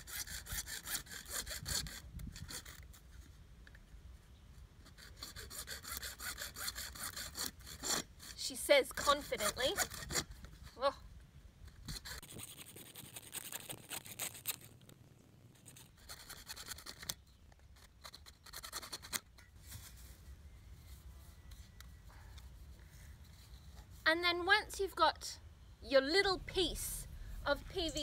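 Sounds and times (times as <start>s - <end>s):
hacksaw cutting plastic pipe: 0.0s - 2.8s, 4.9s - 10.3s, 17.8s - 19.3s.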